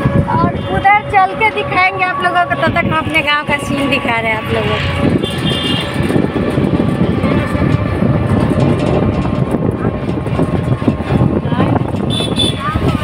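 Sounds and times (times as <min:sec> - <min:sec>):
auto rickshaw engine running: 0:00.0 - 0:13.0
road and wind rumble: 0:00.0 - 0:13.0.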